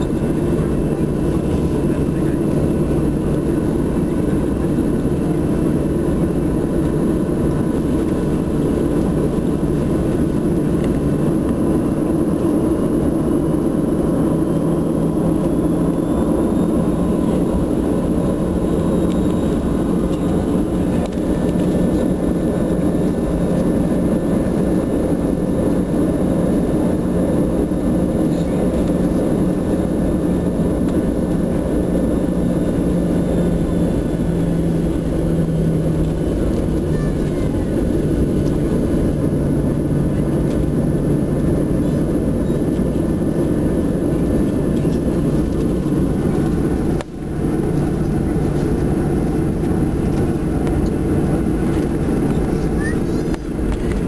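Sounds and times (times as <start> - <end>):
jet engines rumbling: 0.0 - 54.0
steady cabin hum: 0.0 - 54.0.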